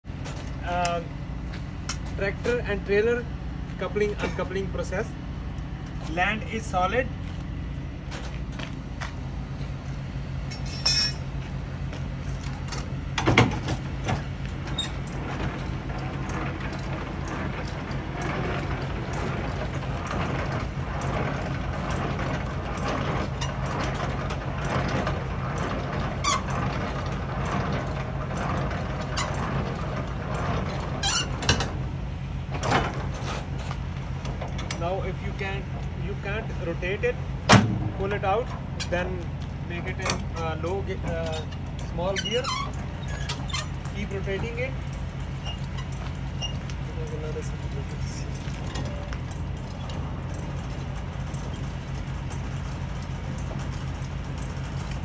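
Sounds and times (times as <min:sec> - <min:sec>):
diesel engine idling: 0:00.0 - 0:10.6, 0:11.2 - 0:55.0.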